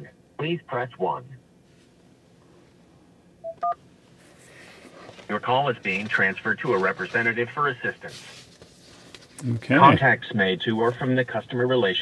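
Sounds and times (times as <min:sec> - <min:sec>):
touch-tone beeps: 0:03.4 - 0:03.8.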